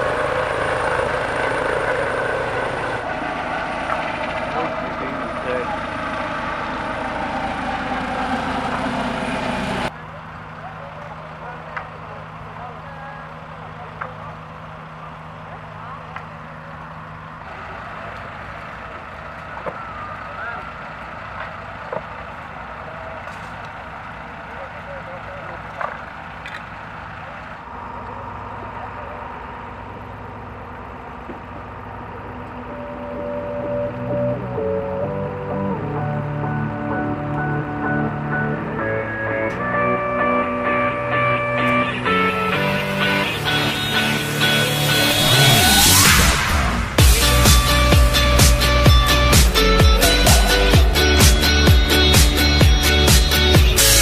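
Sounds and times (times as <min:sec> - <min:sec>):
low engine hum: 0:00.0 - 0:54.0
faint voices: 0:03.9 - 0:32.4
music with a beat: 0:47.0 - 0:54.0.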